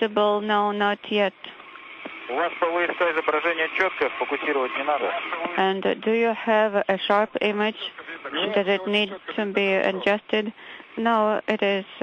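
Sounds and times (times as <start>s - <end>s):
steady radio hiss: 0.0s - 12.0s
radio speech: 2.2s - 12.0s.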